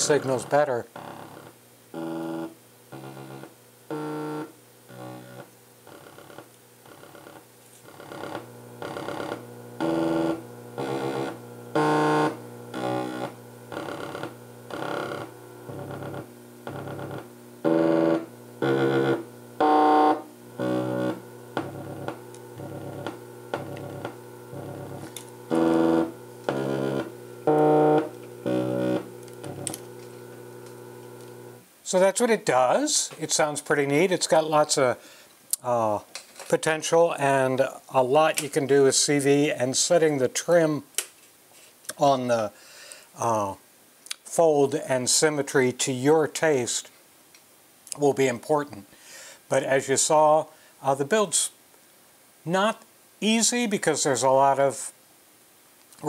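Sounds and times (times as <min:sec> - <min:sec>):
low buzzy synthesizer notes: 0:00.0 - 0:06.4, 0:08.0 - 0:31.6.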